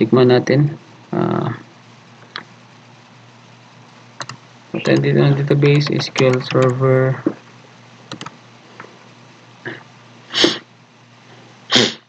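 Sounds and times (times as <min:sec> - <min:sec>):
man sneezing: 0:09.7 - 0:10.7, 0:11.7 - 0:12.0.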